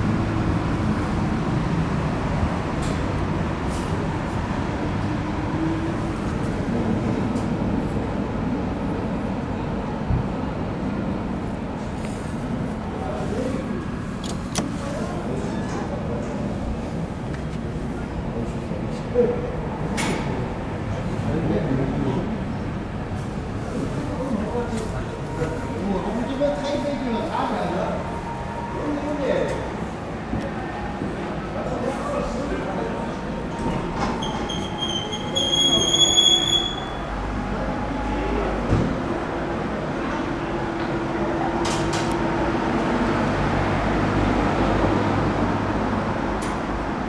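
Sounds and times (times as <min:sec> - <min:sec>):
faint voices: 0:11.8 - 0:43.3
high-pitched metallic squeal: 0:34.2 - 0:37.1.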